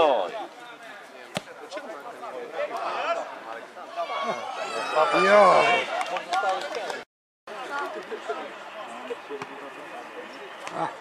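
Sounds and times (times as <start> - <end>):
spectators and players calling out: 1.4 - 11.0.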